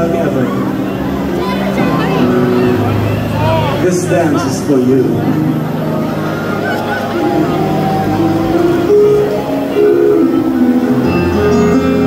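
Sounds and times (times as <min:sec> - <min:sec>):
band playing sustained chords: 0:00.0 - 0:12.0.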